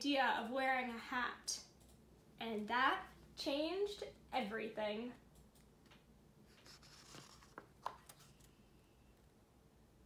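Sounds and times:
paper page rustle: 6.5s - 8.4s.

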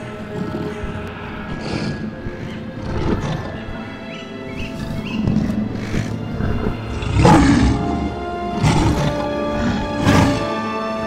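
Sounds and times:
film score sustained notes: 0.0s - 11.0s
lion roaring: 0.0s - 11.0s.

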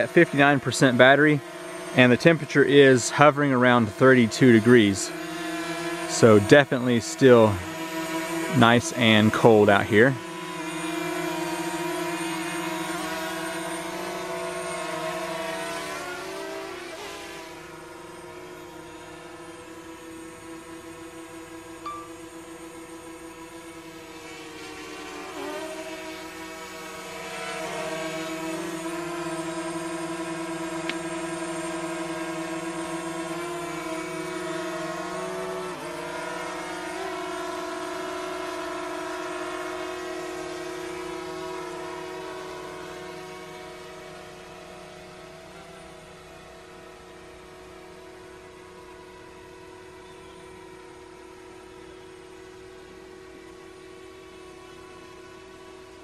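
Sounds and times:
drone propellers whining: 0.0s - 56.0s.

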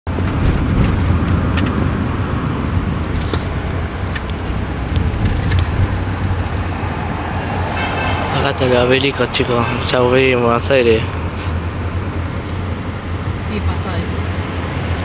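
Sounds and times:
car engine rumble: 0.1s - 15.0s
road noise: 0.1s - 15.0s.

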